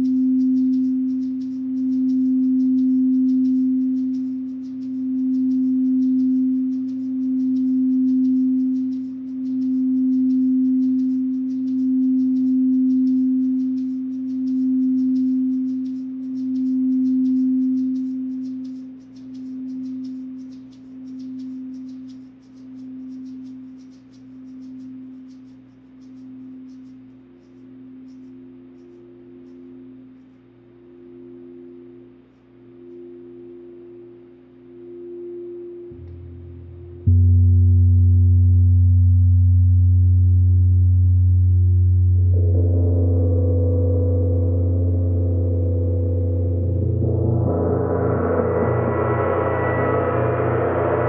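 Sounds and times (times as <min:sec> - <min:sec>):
higher-pitched singing bowl: 0:00.0 - 0:25.5, 0:26.1 - 0:51.0
singing bowl low tone: 0:00.0 - 0:51.0.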